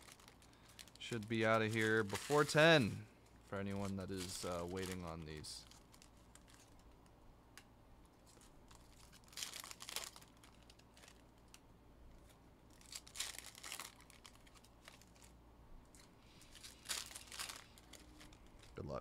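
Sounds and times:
foil wrappers torn and crinkled: 0:00.0 - 0:07.0, 0:08.2 - 0:11.6, 0:12.7 - 0:15.3, 0:16.0 - 0:18.8.

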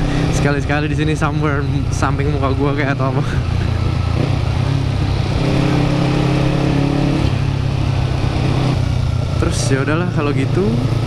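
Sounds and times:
motorcycle engine running: 0:00.0 - 0:11.0
traffic noise: 0:00.0 - 0:11.0.

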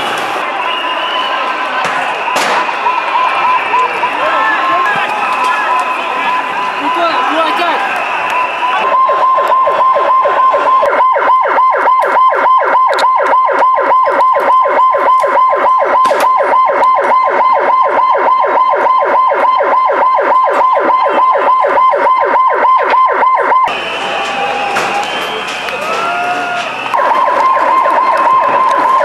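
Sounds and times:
emergency siren yelping: 0:00.1 - 0:29.0.

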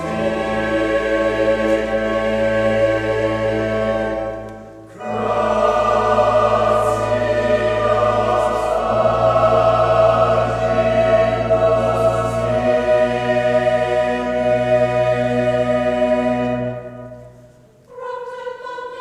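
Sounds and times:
instrumental accompaniment: 0:00.0 - 0:17.9
choir singing sustained chords: 0:00.0 - 0:19.0.

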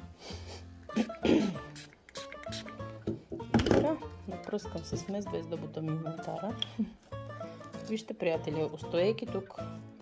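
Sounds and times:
spray bottle spritzes: 0:00.9 - 0:03.2
plucked string music: 0:00.9 - 0:10.0.

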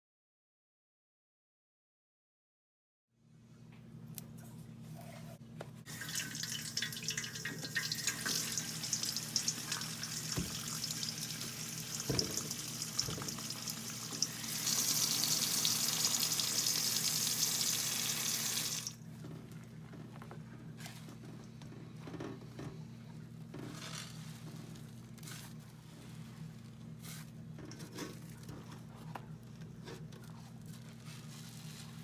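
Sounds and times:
tap water running into a bowl: 0:05.9 - 0:19.0.

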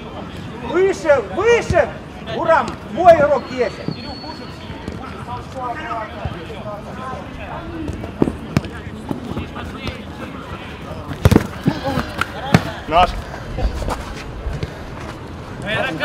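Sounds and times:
football kick thuds: 0:11.2 - 0:11.6.

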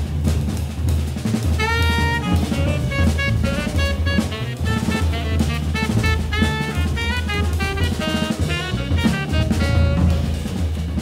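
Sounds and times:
drum kit with cymbals: 0:00.0 - 0:11.0
walking double bass: 0:00.0 - 0:11.0
saxophone: 0:01.6 - 0:10.6.

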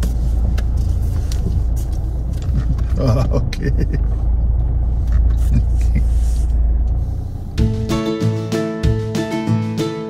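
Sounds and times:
car engine rumble: 0:00.0 - 0:10.0
strummed guitar music: 0:07.6 - 0:10.0.

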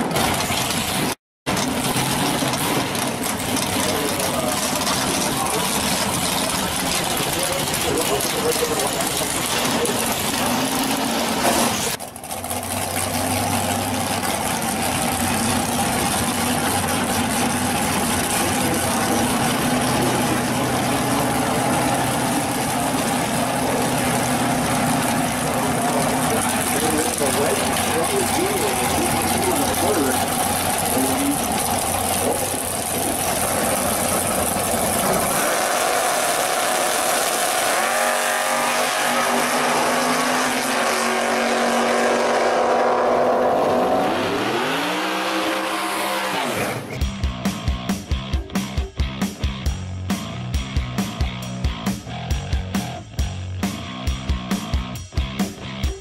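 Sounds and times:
tires spinning: 0:00.0 - 0:47.1
drag car engines roaring: 0:00.0 - 0:56.0
engine revving: 0:00.0 - 0:56.0.

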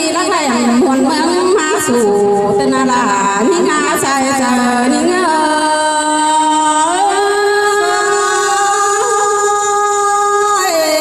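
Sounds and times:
person singing folk song: 0:03.5 - 0:11.0.

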